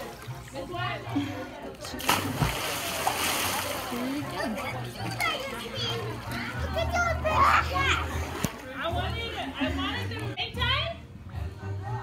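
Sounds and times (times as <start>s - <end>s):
water splash: 1.9s - 4.2s
children's voices: 4.3s - 8.4s.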